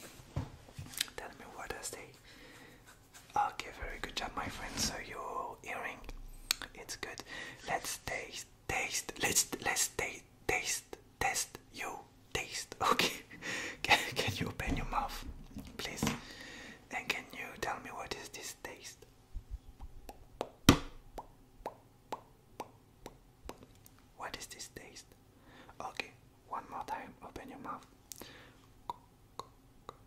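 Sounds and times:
asmr whispering: 0:01.1 - 0:02.2, 0:03.3 - 0:16.2, 0:16.9 - 0:19.0, 0:24.2 - 0:25.2, 0:25.8 - 0:27.9.

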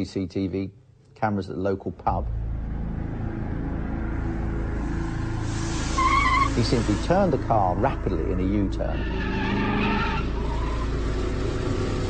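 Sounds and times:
car engine rumbling: 0:02.1 - 0:12.0
tyres squealing: 0:05.9 - 0:06.7, 0:08.8 - 0:11.0.

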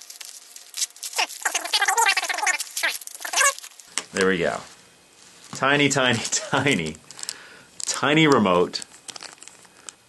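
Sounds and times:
padded paper envelope crinkling: 0:00.0 - 0:09.9.

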